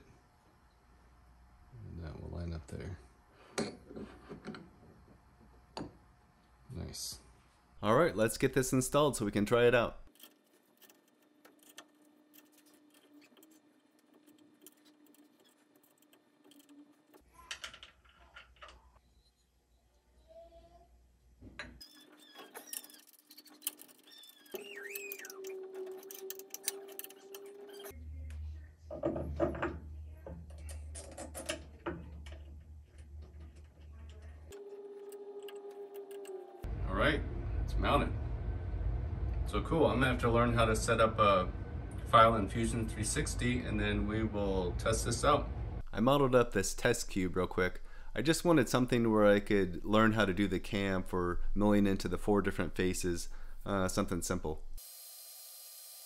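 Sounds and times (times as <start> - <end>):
metal parts clinking: 22.0 - 27.9
steady low hum: 31.8 - 54.8.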